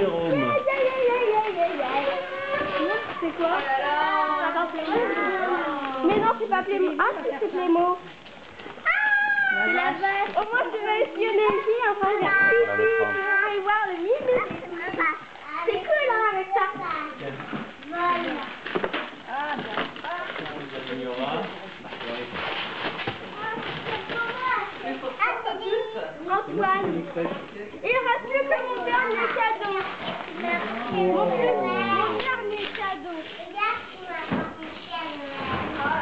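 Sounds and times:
children's voices chattering: 0.0s - 20.7s, 23.3s - 27.2s, 27.8s - 36.0s
adult voices: 0.0s - 22.4s, 23.3s - 36.0s.

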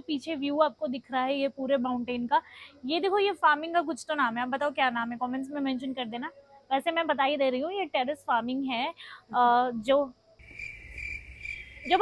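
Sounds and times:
high-pitched insect trill: 9.8s - 12.0s.

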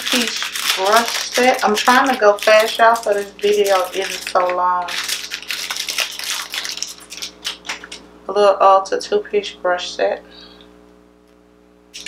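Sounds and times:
packaging crinkling: 0.0s - 8.1s.

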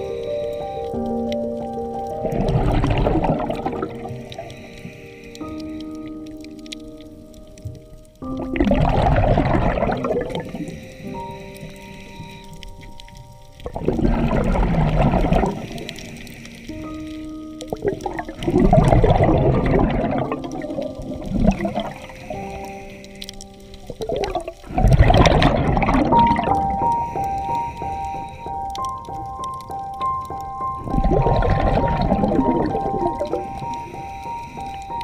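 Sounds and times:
background music of held notes: 0.0s - 35.0s
regulator exhalation bubbling: 2.2s - 5.0s, 8.4s - 11.4s, 13.6s - 16.7s, 17.7s - 22.6s, 23.9s - 28.9s, 30.8s - 34.7s.

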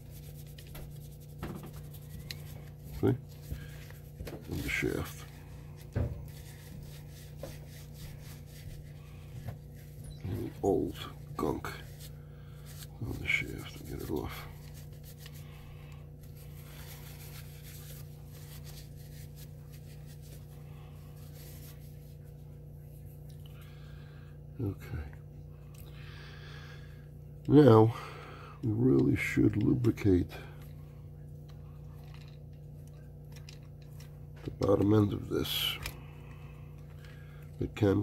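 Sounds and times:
tissue rubbing motor: 0.0s - 20.5s
low electrical hum: 0.0s - 38.0s.

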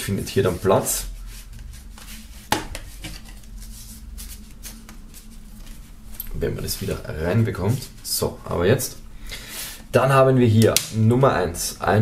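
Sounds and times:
paper and card rustling: 0.5s - 6.0s.

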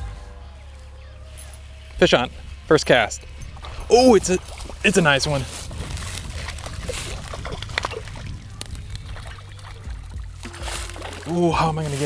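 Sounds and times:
fish splashing in water: 3.4s - 11.4s.

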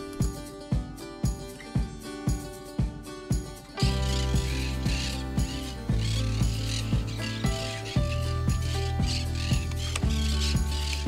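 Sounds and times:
background music with bass beat: 0.0s - 11.0s
parakeets chattering: 3.8s - 11.0s.

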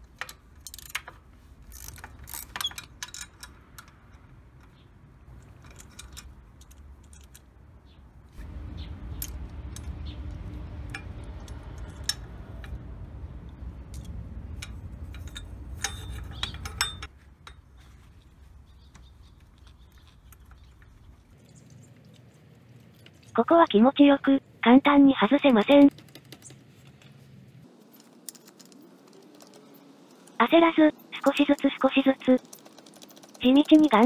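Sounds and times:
socket wrench clicking: 0.0s - 4.8s, 13.9s - 17.6s
steady low rumble: 3.5s - 20.2s.

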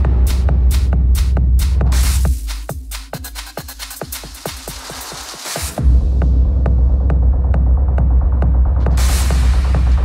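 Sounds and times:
deep bass throb: 0.0s - 2.9s, 5.8s - 10.0s.

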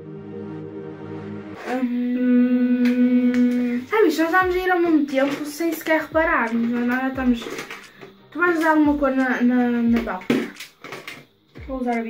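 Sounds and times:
woman singing a long note: 1.6s - 4.6s
woman sing-song speech: 1.6s - 7.6s, 8.4s - 10.5s, 11.6s - 12.0s.

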